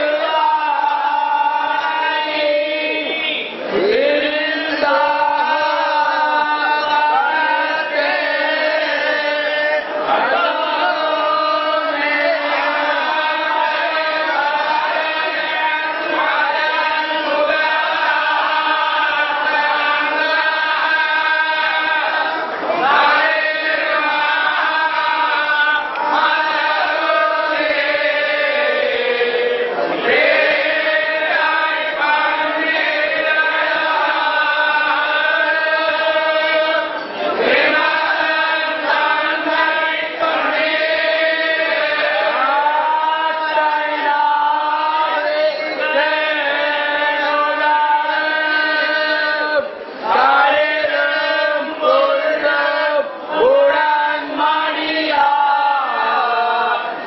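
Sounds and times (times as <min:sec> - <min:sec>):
men chanting in unison: 0:00.0 - 0:57.0.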